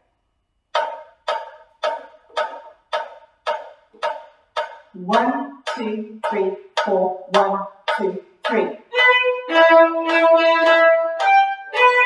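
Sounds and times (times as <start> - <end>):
metronome clicking: 0.7 - 12.0.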